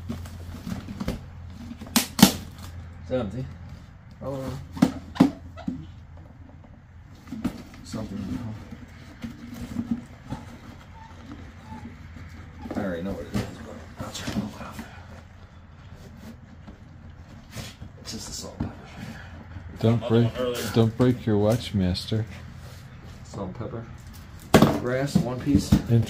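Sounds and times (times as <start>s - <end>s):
knocks and rustling of cases: 0.0s - 2.8s, 4.5s - 19.8s, 24.1s - 26.0s.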